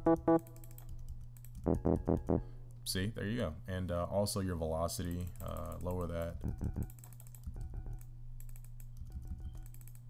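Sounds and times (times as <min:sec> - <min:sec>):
keyboard keys clicking: 0:05.3 - 0:10.0.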